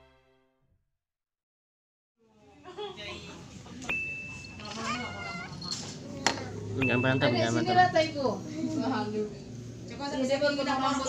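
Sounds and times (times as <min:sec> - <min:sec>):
cats play-fighting: 0:04.5 - 0:06.6
cat meowing: 0:04.6 - 0:05.8.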